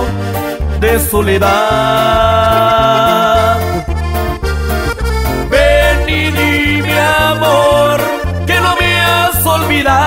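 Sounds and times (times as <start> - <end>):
accordion melody: 0.0 - 10.0
walking bass line: 0.0 - 10.0.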